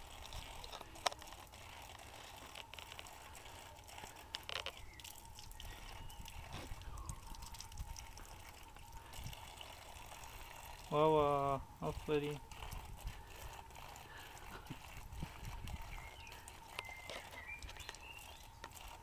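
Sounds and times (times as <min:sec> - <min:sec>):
water trickling from tap: 0:00.0 - 0:11.2, 0:11.9 - 0:19.0.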